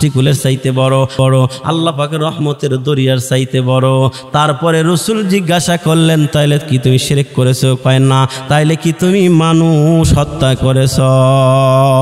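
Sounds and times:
man preaching in chanting tone: 0:00.0 - 0:12.0.

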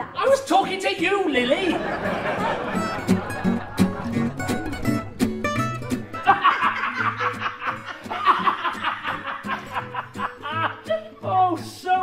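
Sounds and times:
people laughing: 0:01.5 - 0:05.2, 0:05.8 - 0:11.2
music playing: 0:01.7 - 0:11.7.

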